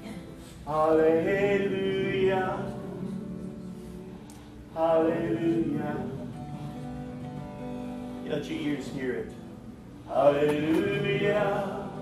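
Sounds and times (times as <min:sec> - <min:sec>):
acoustic guitar chord: 0:00.0 - 0:12.0.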